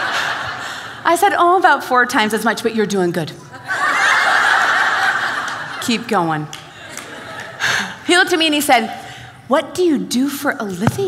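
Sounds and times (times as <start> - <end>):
large audience laughing: 0.0 - 1.0, 3.4 - 8.0.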